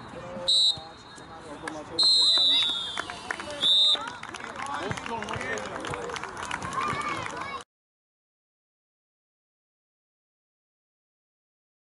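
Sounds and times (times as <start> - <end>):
children chattering and shouting: 6.6 - 7.6.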